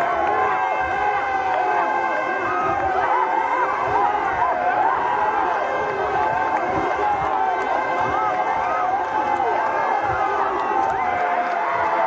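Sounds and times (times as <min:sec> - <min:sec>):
crowd shouting: 0:00.0 - 0:12.0.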